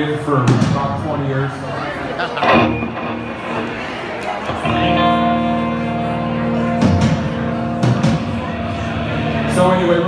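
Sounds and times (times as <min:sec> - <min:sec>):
electric guitar chords ringing: 0:02.4 - 0:10.0.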